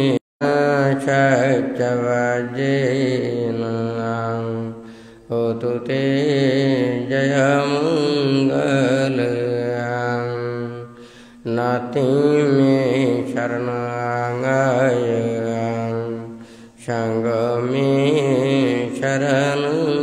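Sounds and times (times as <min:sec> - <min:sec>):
monk chanting solo: 0:00.0 - 0:20.0.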